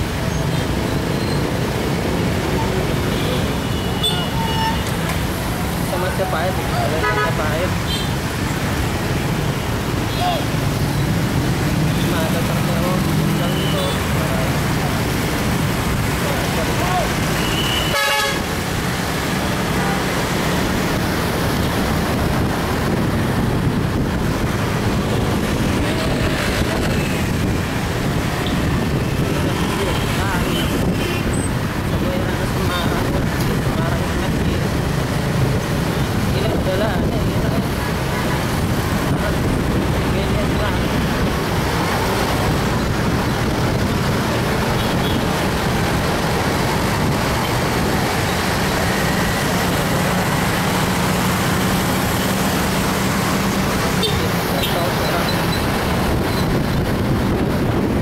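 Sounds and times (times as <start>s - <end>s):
motorcycles and cars traffic: 0.0s - 58.0s
vehicle horn toot: 17.4s - 18.4s.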